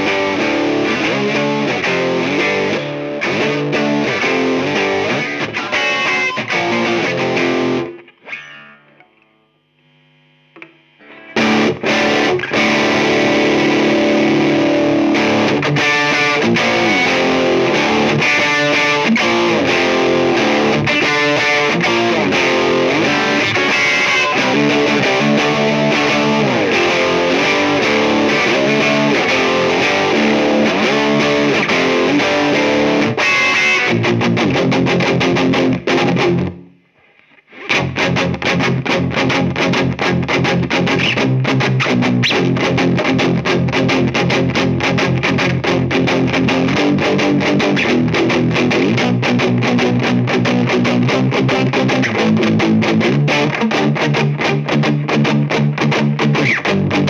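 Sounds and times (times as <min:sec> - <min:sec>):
distorted electric guitar riffing: 0:00.0 - 0:57.0.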